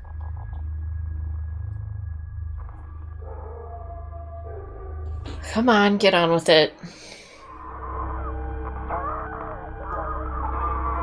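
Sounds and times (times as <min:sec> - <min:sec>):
deep rumbling drone: 0:00.0 - 0:06.3, 0:07.3 - 0:11.0
sustained higher tones: 0:07.5 - 0:11.0.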